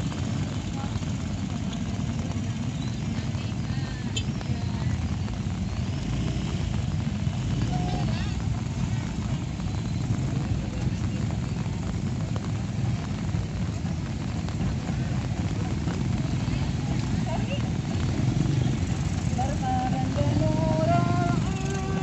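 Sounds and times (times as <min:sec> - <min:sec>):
motorcycle engines passing slowly: 0:00.0 - 0:22.0.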